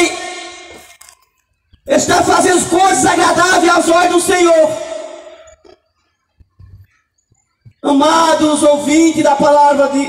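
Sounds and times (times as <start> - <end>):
man's voice through loudspeaker: 0.0 - 0.8, 1.9 - 5.5, 7.8 - 10.0.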